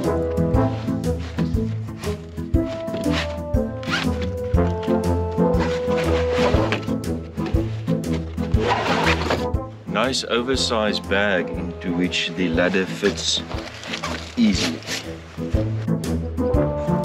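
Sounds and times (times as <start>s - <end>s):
background music with steady beat: 0.0s - 17.0s
zipper rasping: 0.6s - 9.6s, 12.7s - 15.8s.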